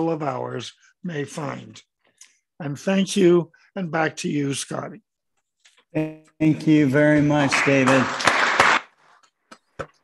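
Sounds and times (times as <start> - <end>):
applause: 7.3 - 9.2.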